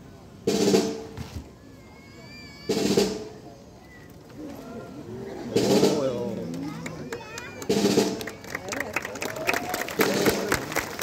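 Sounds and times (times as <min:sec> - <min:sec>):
soft crowd voices: 0:00.0 - 0:11.0.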